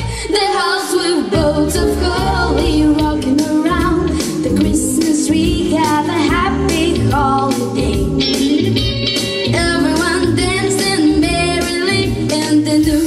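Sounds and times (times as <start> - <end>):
girl singing into a microphone: 0.0 - 8.6, 9.5 - 13.0
instrumental backing with bass: 1.2 - 13.0
steady beat: 1.4 - 11.4.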